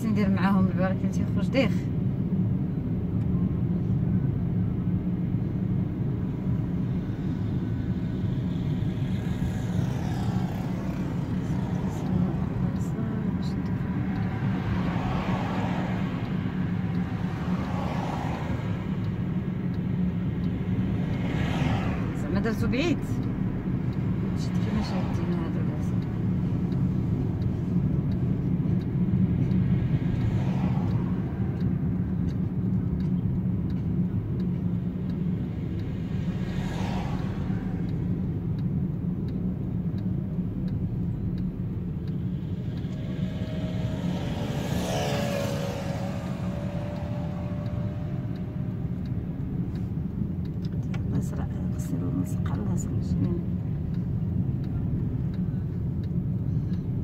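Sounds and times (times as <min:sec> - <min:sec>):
car engine and road rumble: 0:00.0 - 0:57.0
vehicles swishing past: 0:00.0 - 0:57.0.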